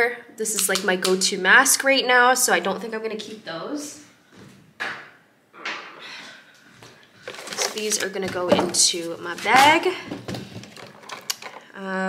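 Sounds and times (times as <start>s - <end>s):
makeup items clicking and rattling: 7.2s - 11.7s.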